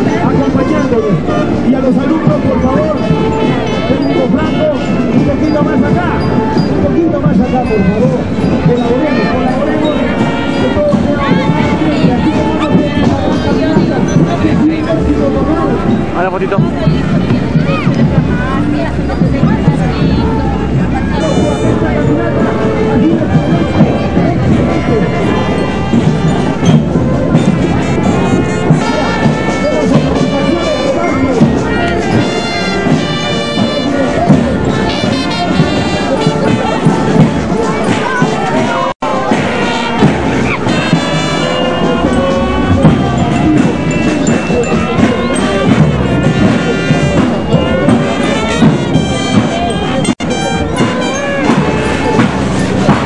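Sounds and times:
many voices: 0.0s - 53.0s
music: 0.0s - 53.0s.

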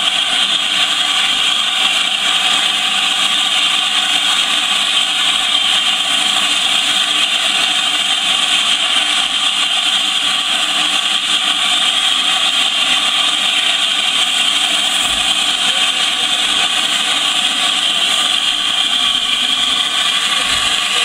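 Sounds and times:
steam locomotive hissing: 0.0s - 21.0s.

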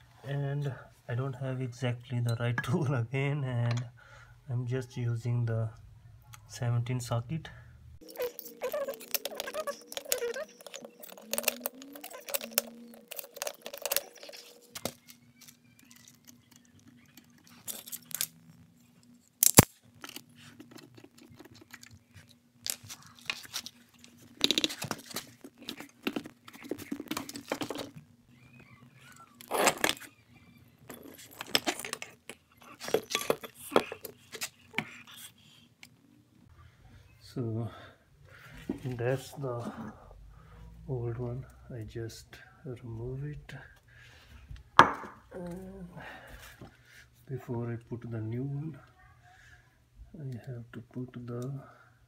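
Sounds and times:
faint steady hum: 0.0s - 52.0s
loose metal parts rattling: 30.8s - 34.1s.

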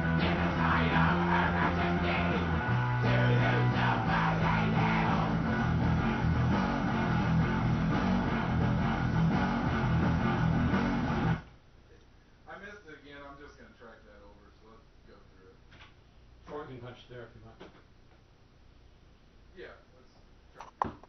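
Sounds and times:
bass guitar: 0.0s - 11.5s
distorted electric guitar: 0.0s - 11.5s.

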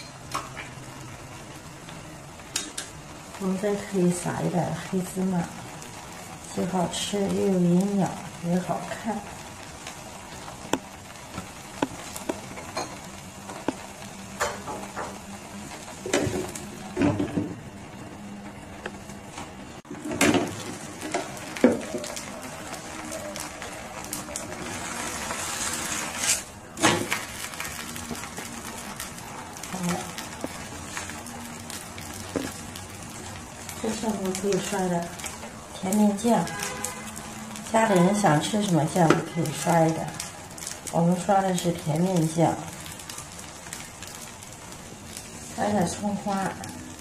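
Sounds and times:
egg batter sizzling on a pan: 0.0s - 47.0s.

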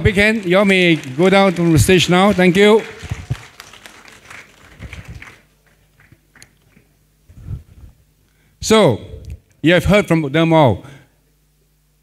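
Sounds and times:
audience applause: 0.0s - 6.9s.

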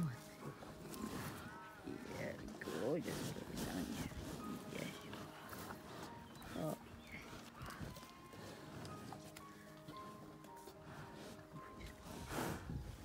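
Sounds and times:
cattle sniffing and breathing: 0.0s - 13.0s
cattle vocal sounds: 0.0s - 13.0s.

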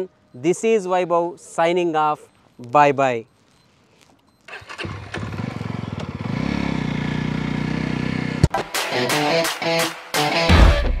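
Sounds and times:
motorcycle engine idling: 4.5s - 8.4s.

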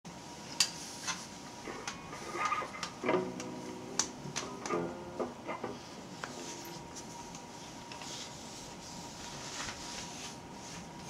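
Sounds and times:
guitar handling clicks and knocks: 1.8s - 5.8s
electric guitar strings ringing: 2.5s - 5.6s.

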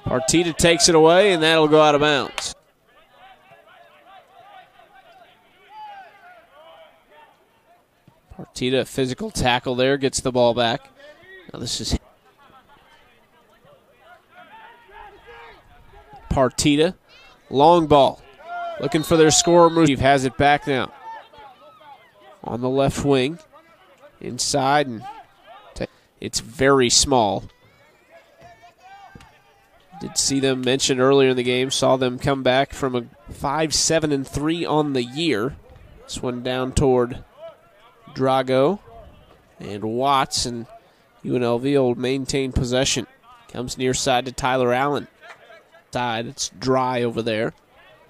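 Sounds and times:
players shouting and calling: 0.0s - 48.0s
distant voices calling out: 10.8s - 26.2s.

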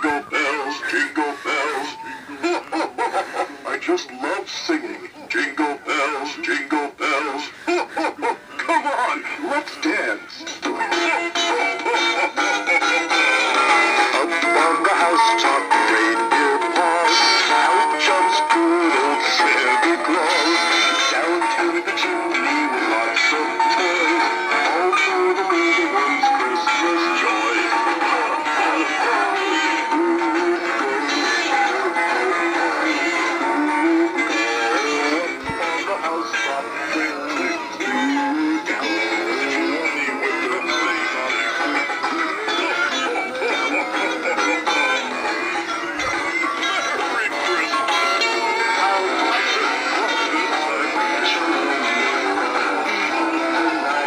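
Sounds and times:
thin singing through small speakers: 0.0s - 54.0s.

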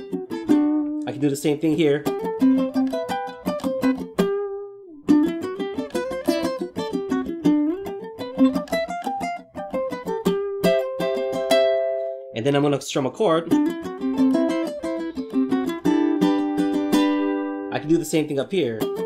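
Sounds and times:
ukulele strumming chords: 0.0s - 19.0s.

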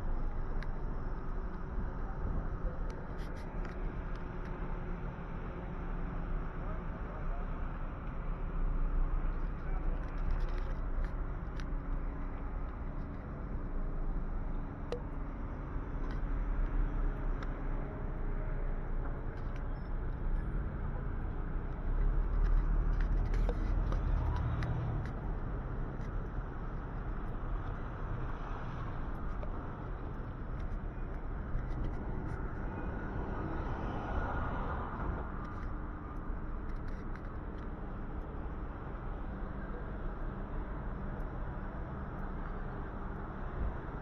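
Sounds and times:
traffic rumble: 0.0s - 44.0s.

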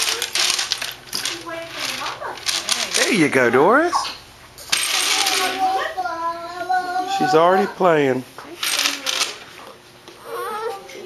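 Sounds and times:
plastic beads rattling on a tray: 0.0s - 3.3s.

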